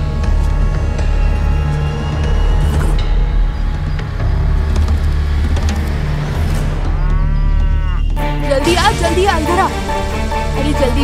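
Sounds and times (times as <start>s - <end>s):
cow mooing: 6.9s - 8.1s.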